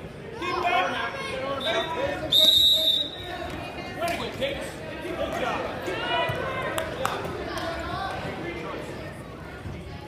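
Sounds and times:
spectators calling out and talking: 0.0 - 10.0.

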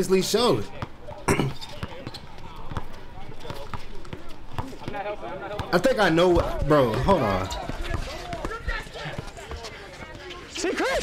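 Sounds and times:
voices chattering: 0.0 - 11.0
basketball bouncing on hard court: 5.6 - 10.2.

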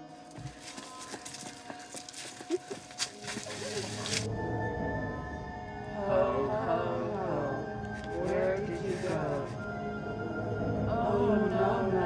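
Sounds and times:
clothing and feet scuffling: 0.3 - 4.3.

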